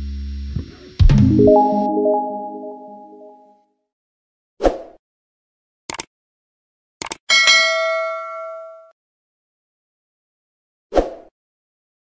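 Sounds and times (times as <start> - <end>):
notification bell ding: 1.2 - 3.5, 7.3 - 8.9.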